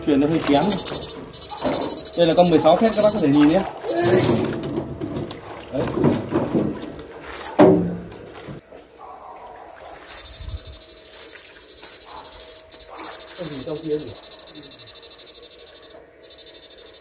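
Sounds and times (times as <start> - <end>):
man speaking: 2.1 - 4.5, 13.3 - 14.9
pulsing high electronic whine: 10.1 - 17.0.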